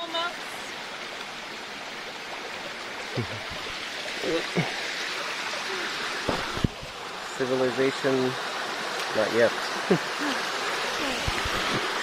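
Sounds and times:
stream flowing over rocks: 0.0 - 12.0.

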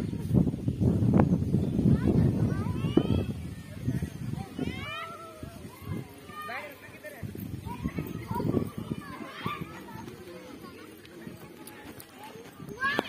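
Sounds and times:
people talking outdoors: 0.0 - 13.0.

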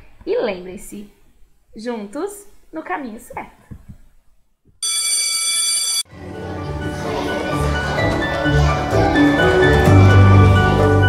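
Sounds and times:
electric school bell ringing: 4.8 - 6.1
background music: 6.1 - 11.0.

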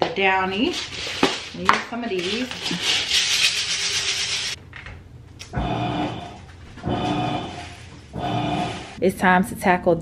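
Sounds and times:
washer motor humming: 5.4 - 9.0.

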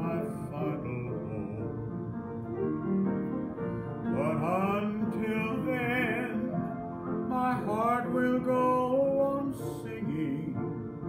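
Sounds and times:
man singing gospel song: 0.0 - 1.8, 4.1 - 10.7
instrumental accompaniment: 0.0 - 11.0.

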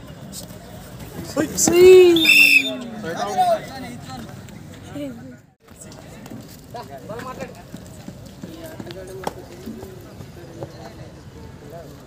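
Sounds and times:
people shouting: 1.6 - 3.6.

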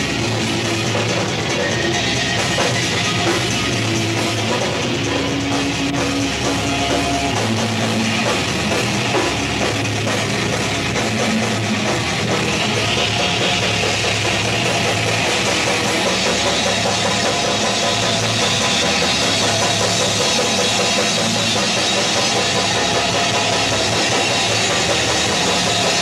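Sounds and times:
metal band playing: 0.0 - 26.0.

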